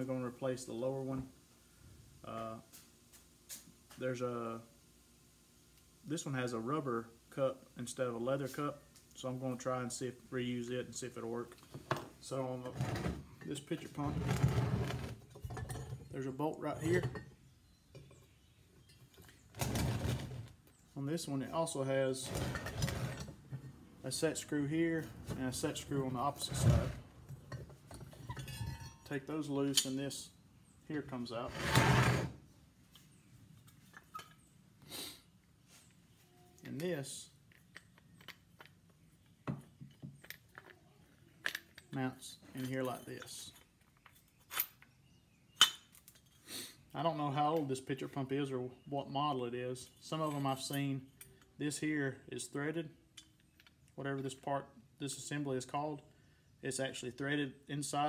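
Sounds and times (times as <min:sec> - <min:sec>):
metal pump parts clinking: 0:15.2 - 0:18.2, 0:22.2 - 0:23.7, 0:27.4 - 0:30.1, 0:39.7 - 0:44.9.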